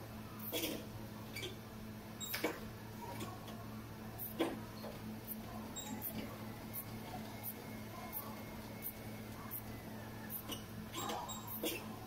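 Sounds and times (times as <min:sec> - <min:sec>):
steady low hum: 0:00.0 - 0:12.0
cross-trainer squeaking: 0:00.5 - 0:01.6, 0:05.6 - 0:07.6, 0:08.8 - 0:12.0.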